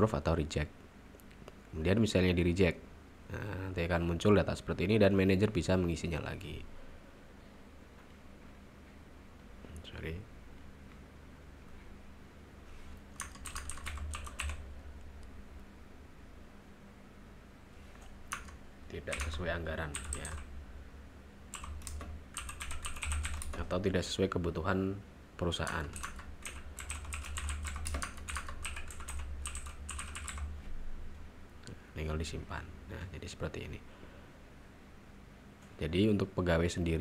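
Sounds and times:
steady low hum: 0.0s - 37.0s
computer keyboard typing: 13.1s - 14.6s, 18.0s - 20.5s, 21.5s - 23.7s, 25.6s - 30.5s.

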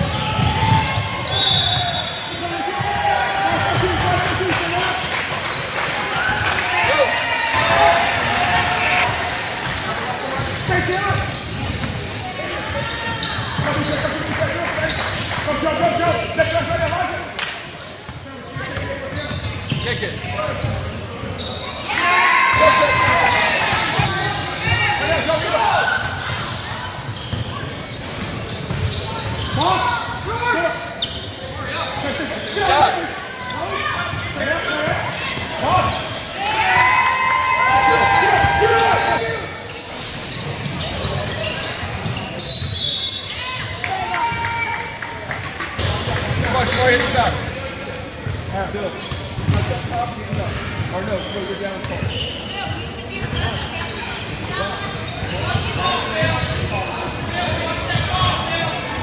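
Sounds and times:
voices shouting in large hall: 0.0s - 17.4s, 19.9s - 48.2s.

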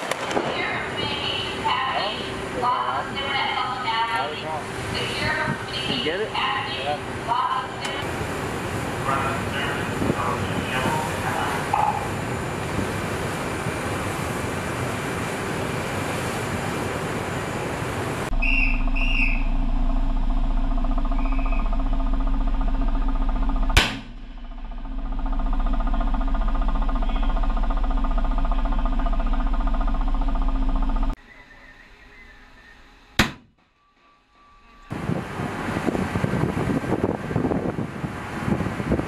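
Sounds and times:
wind and sea rushing: 0.0s - 19.4s, 34.9s - 39.0s
ship machinery hum: 0.0s - 39.0s
rifle gunshot: 23.8s - 24.2s.

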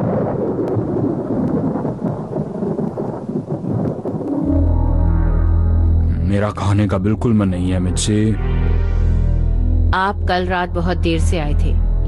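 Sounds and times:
cartoon thunder rumbling: 0.0s - 5.4s.

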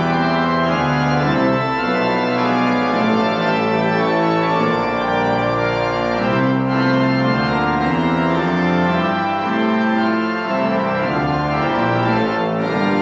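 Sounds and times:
organ playing held chords: 0.0s - 13.0s.

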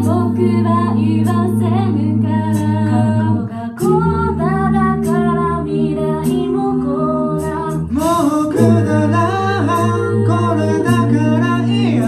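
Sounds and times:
a cappella group singing chords: 0.0s - 12.0s
deep bass vocal note: 0.0s - 12.0s.

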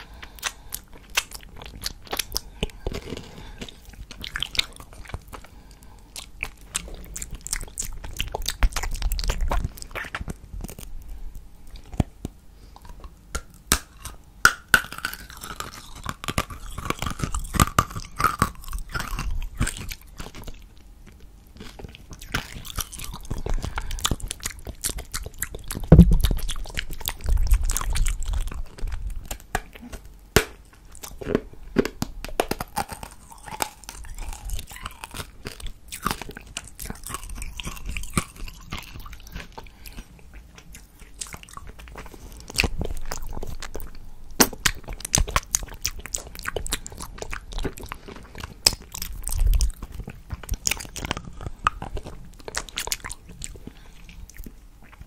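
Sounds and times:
licking and sucking candy: 0.0s - 55.0s.

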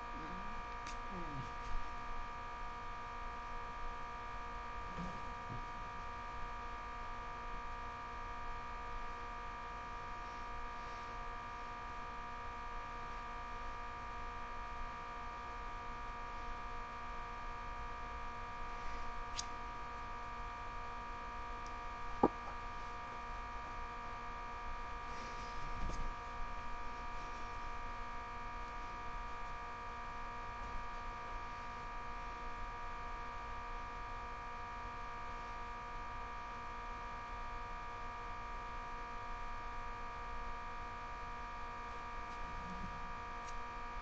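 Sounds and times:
steady electrical hum: 0.0s - 44.0s.

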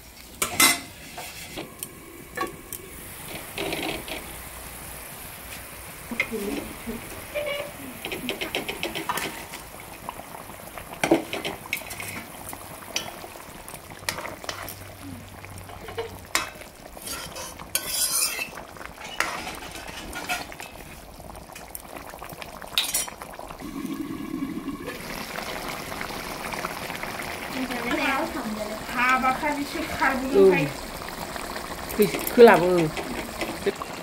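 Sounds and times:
spoon stirring and scraping in a pan: 0.0s - 4.3s, 5.5s - 9.7s, 11.0s - 13.2s, 14.0s - 14.9s, 15.7s - 21.7s, 22.8s - 23.2s
curry bubbling: 0.0s - 34.0s.

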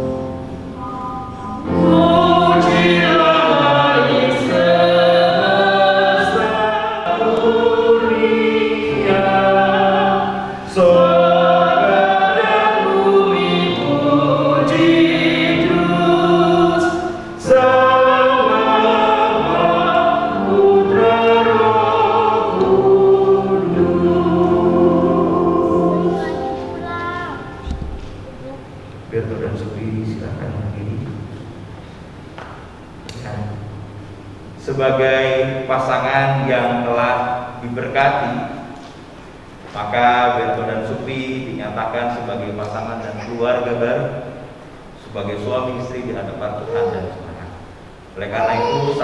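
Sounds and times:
choir singing a hymn: 0.0s - 28.2s, 34.7s - 46.8s.

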